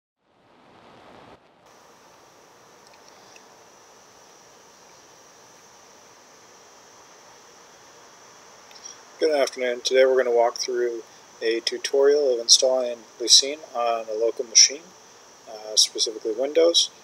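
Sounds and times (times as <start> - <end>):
microphone hiss: 0.2 - 17.0
high-pitched whine: 0.3 - 17.0.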